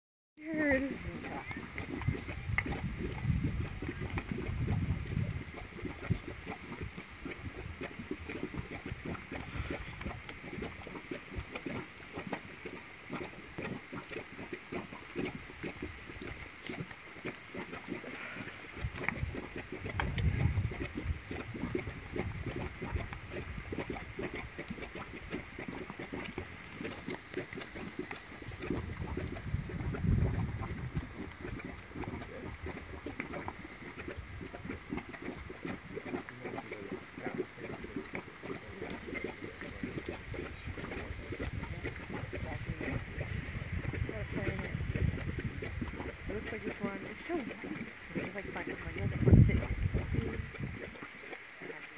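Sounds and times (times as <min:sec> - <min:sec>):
low mud surges: 0:00.4 - 0:51.9
mud bubbling and popping: 0:00.4 - 0:51.9.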